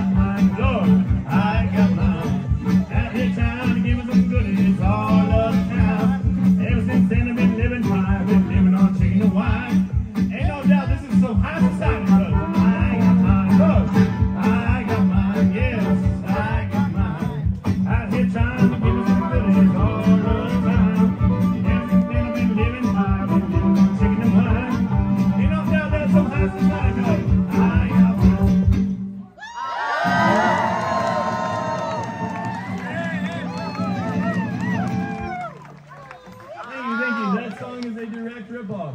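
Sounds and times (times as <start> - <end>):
guitar: 0.0 - 36.6
drums: 0.0 - 37.3
fiddle: 18.8 - 28.2.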